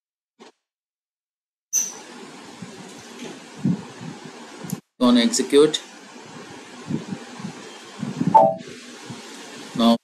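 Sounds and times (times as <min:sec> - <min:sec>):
microphone hiss: 0:02.1 - 0:10.0.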